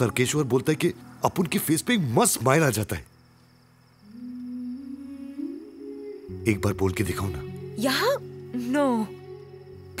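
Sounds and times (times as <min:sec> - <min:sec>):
soft slow film score melody: 0:00.0 - 0:10.0.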